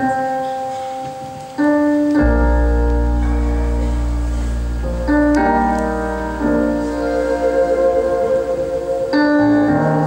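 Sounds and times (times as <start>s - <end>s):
slow keyboard chord: 0.0s - 10.0s.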